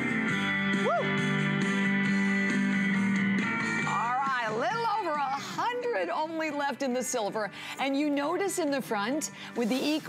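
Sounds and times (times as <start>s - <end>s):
guitar music from speaker: 0.0s - 9.2s.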